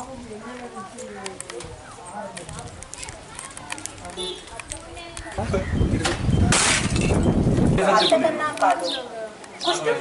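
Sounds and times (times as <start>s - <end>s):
people talking: 0.0s - 6.6s, 7.8s - 10.0s.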